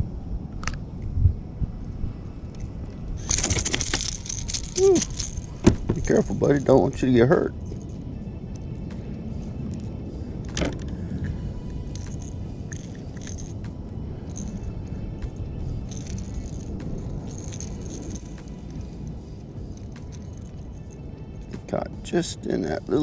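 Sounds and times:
wind rumble on microphone: 0.0 - 23.0
light clicks and rattles: 2.5 - 7.1, 15.9 - 18.9.

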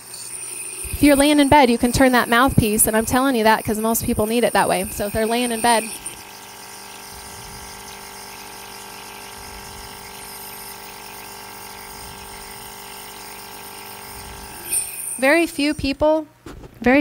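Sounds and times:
nebulizer humming: 0.0 - 15.9.

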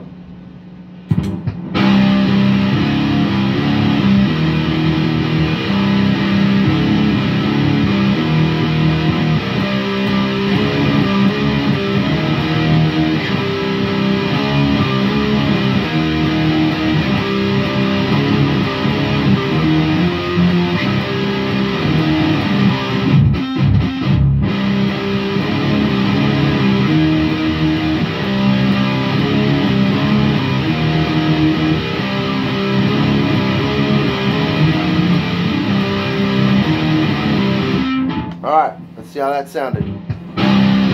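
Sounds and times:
looped electric guitar riff: 1.0 - 40.9
lead electric guitar: 1.1 - 39.0, 39.7 - 40.9.

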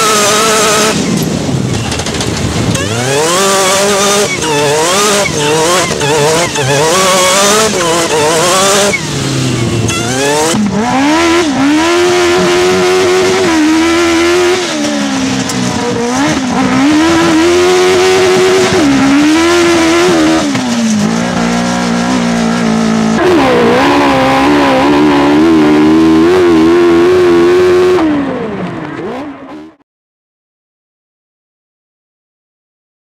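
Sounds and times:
race car engine revving: 0.0 - 29.8.

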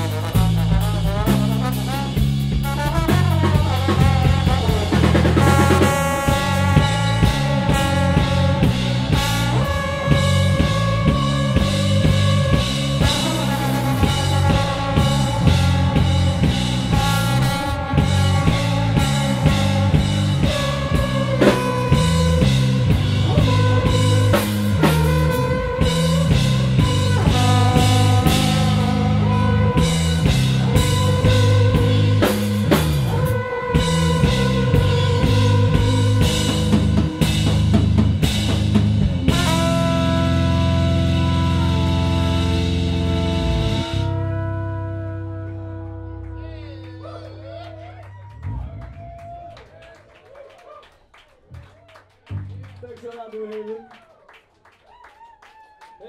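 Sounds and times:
drum kit: 0.0 - 47.2, 47.8 - 50.0
trombone through effects pedals: 0.0 - 49.1
electric bass line: 0.0 - 49.8.

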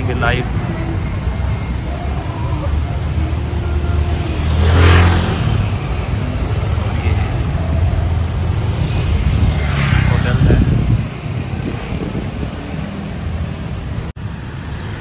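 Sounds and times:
cars and scooters passing: 0.0 - 15.0.

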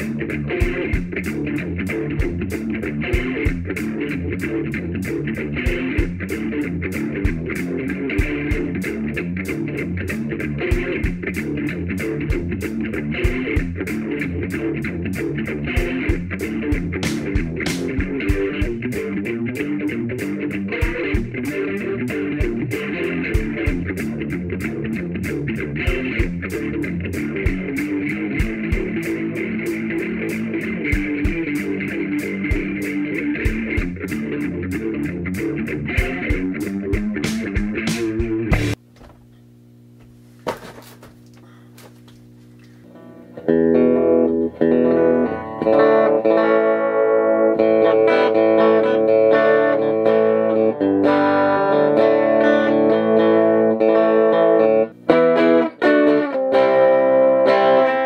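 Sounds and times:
guitar music: 0.0 - 38.8, 42.2 - 58.0
electric guitar through amp: 0.0 - 40.0, 41.2 - 58.0
low steady hum: 38.7 - 43.5.

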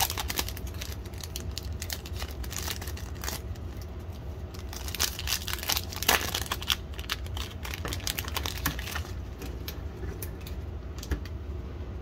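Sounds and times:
foil wrapper crinkling and tearing: 0.0 - 9.3.

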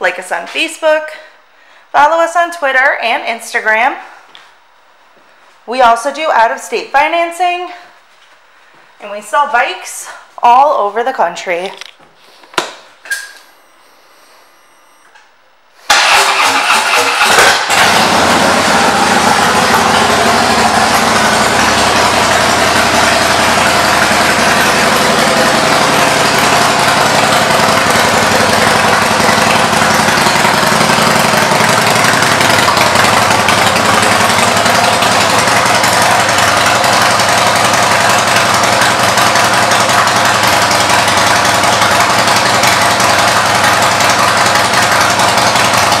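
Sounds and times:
motorcycle engine idling loudly: 15.9 - 46.0
motorcycle starter cranking: 15.9 - 46.0.

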